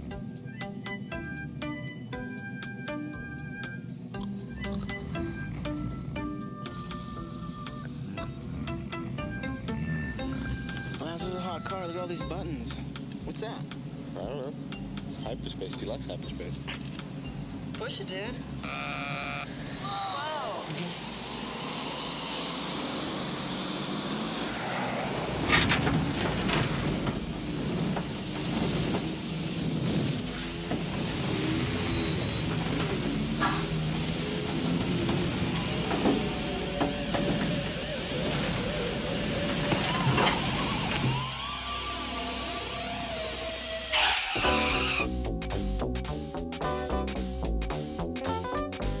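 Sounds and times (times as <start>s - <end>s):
high sci-fi whine: 0.0s - 48.8s
speeding car rushing: 20.3s - 42.3s.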